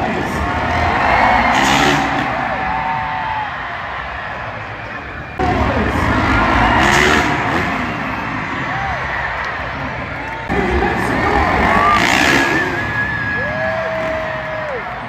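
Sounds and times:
dirt bikes revving: 0:00.0 - 0:03.1, 0:03.8 - 0:15.0
crowd cheering: 0:00.0 - 0:15.0
loud arena music: 0:00.0 - 0:15.0.

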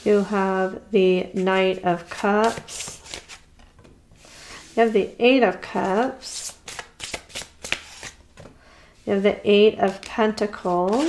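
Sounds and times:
cards shuffled and flicked: 0:06.3 - 0:08.2.

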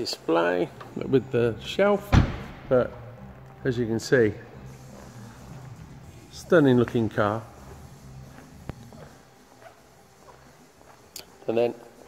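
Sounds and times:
footsteps on hard floor: 0:07.6 - 0:11.1.

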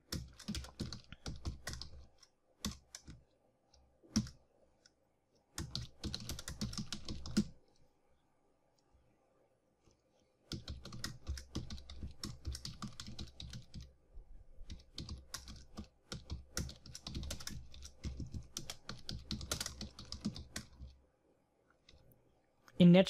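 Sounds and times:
computer keyboard typing: 0:00.0 - 0:03.2, 0:04.1 - 0:04.4, 0:05.5 - 0:07.6, 0:10.5 - 0:13.9, 0:14.6 - 0:21.0.

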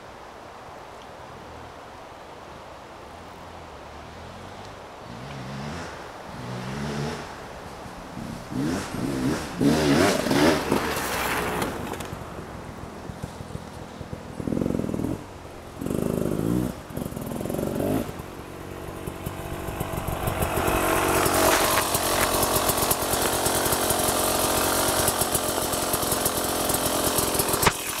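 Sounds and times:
motorcycle engine revving: 0:04.0 - 0:28.0.

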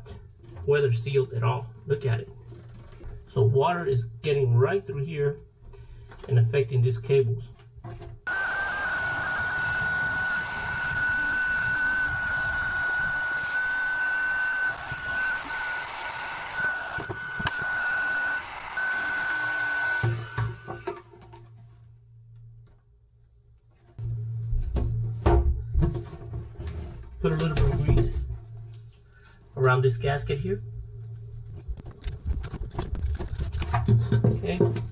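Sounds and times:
heat gun whining: 0:08.3 - 0:21.3
low hum: 0:08.3 - 0:33.8.

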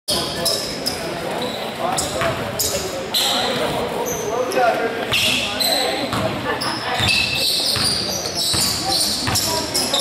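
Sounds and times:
shoe squeaks: 0:00.1 - 0:10.0
voices in echoing hall: 0:00.1 - 0:10.0
basketball bouncing on hardwood: 0:07.8 - 0:09.5.

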